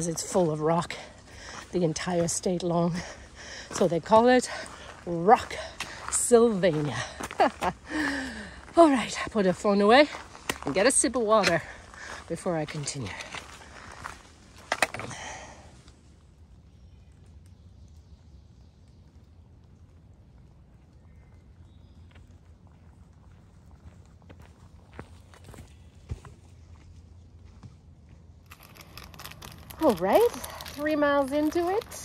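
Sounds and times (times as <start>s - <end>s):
footsteps on rocky leafy trail: 0.0s - 15.9s, 20.7s - 32.0s.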